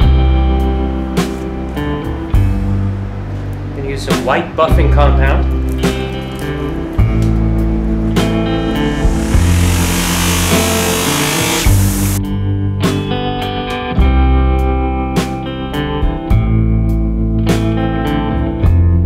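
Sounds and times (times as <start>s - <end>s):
loud hiss: 8.5s - 12.2s.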